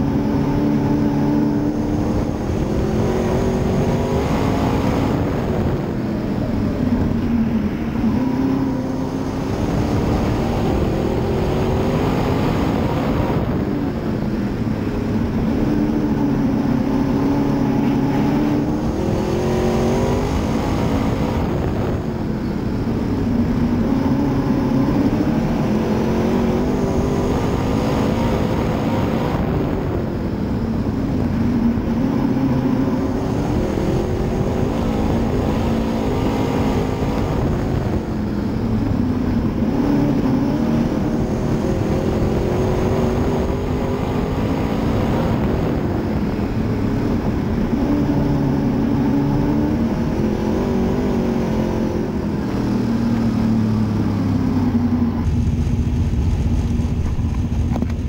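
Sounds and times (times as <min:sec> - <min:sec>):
race car engine running: 0:00.0 - 0:58.0.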